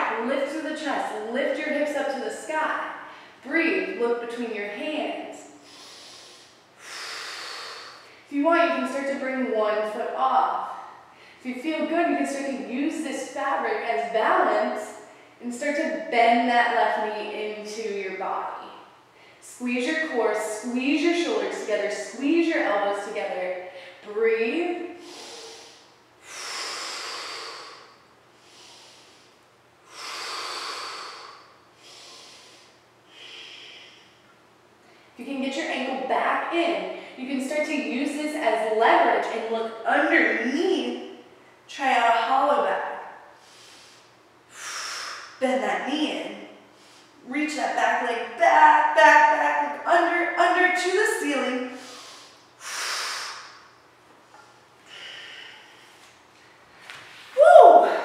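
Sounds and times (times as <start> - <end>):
woman breathing heavily: 5.4 - 8.3, 24.9 - 35.2, 43.3 - 45.4, 46.6 - 47.2, 51.7 - 56.3.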